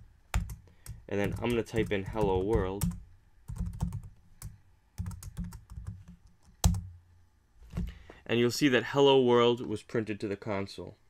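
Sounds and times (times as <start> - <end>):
computer keyboard typing: 0.3 - 6.9.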